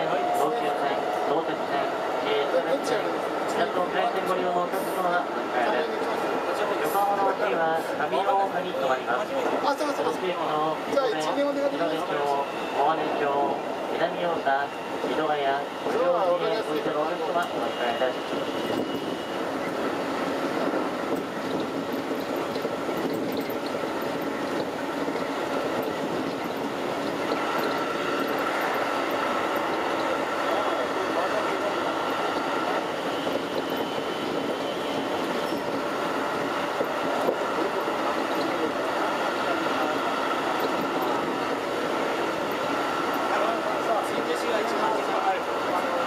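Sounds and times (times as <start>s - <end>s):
train wheels rumbling on rails: 0.0s - 46.0s.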